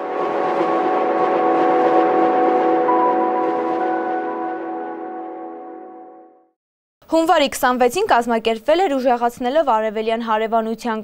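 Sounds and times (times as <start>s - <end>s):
rushing whoosh: 0.0s - 5.8s
sustained synthesized chord: 0.0s - 6.6s.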